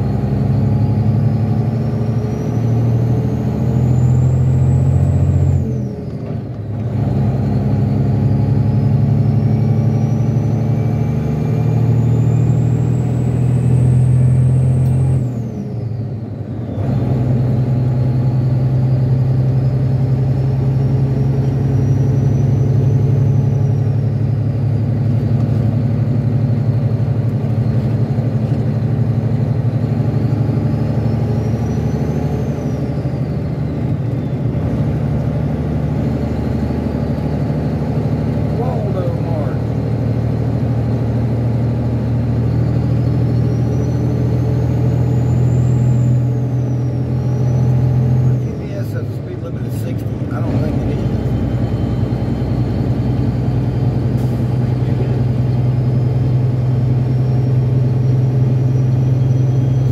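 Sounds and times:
diesel truck engine accelerating: 0:00.0 - 0:59.9.

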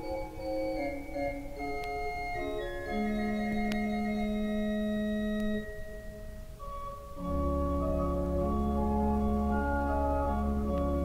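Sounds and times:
pipe organ sustained chord: 0:00.0 - 0:11.0.

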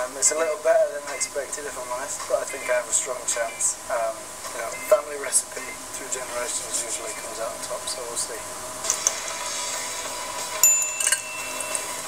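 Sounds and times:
faint steady hum: 0:00.0 - 0:12.0
high bright chime: 0:10.6 - 0:12.0.

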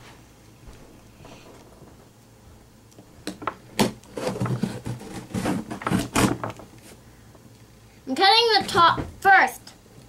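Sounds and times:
knife cutting cardboard box: 0:03.8 - 0:06.4.

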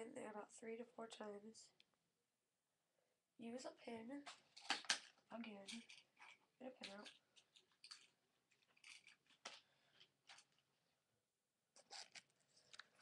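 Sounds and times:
short clicks and rustles: 0:04.3 - 0:10.6.

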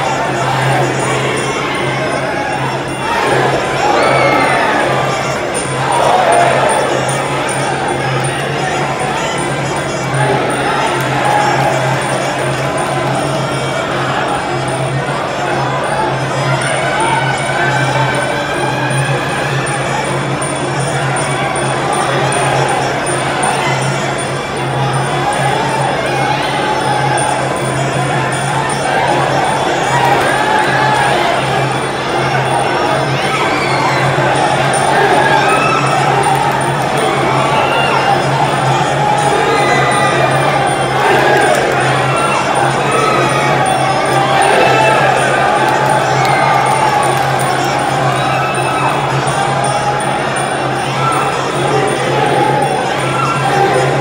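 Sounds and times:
crowd shouting: 0:00.0 - 0:54.0.

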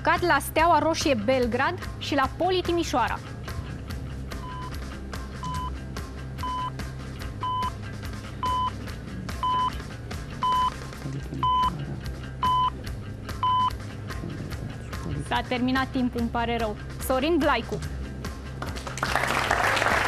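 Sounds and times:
background music with beat: 0:00.0 - 0:20.0.

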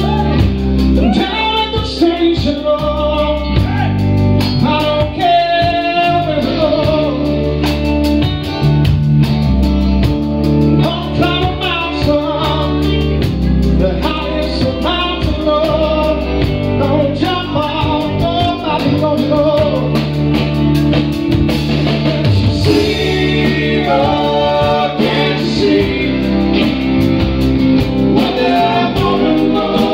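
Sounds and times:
person singing: 0:00.0 - 0:04.0, 0:04.6 - 0:07.5, 0:13.8 - 0:20.0, 0:22.6 - 0:26.8, 0:28.1 - 0:29.9
drums: 0:00.0 - 0:29.9
electric bass: 0:00.0 - 0:29.9
electric guitar: 0:00.0 - 0:29.9.

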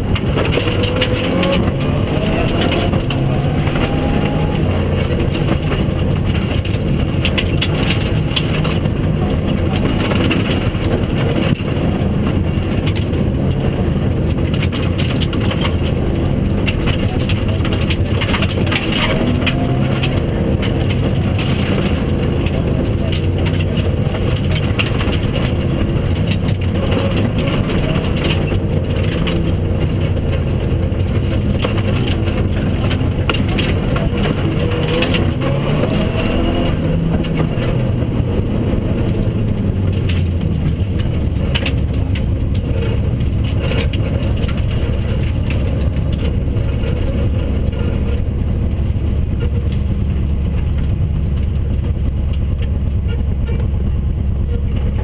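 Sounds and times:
gravel crackling under car: 0:00.0 - 0:55.0
rally car engine revving: 0:00.0 - 0:55.0.

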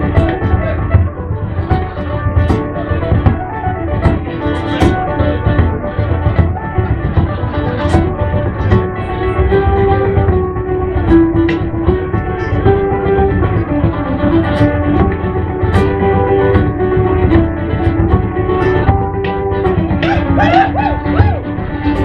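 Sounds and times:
folk melody line: 0:00.0 - 0:22.0
frame drum beating: 0:00.0 - 0:22.0
strummed guitars: 0:00.0 - 0:22.0.

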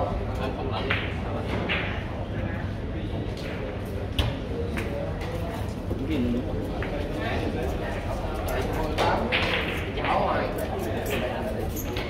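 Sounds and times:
murmur of voices: 0:00.0 - 0:12.0
billiard balls clicking: 0:08.8 - 0:12.0.

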